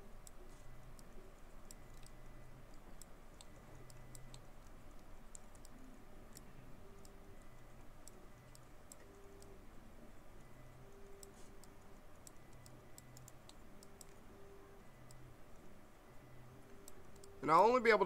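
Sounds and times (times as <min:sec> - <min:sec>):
mouse and keyboard clicking: 0:00.2 - 0:09.5, 0:10.8 - 0:14.3, 0:16.7 - 0:17.4.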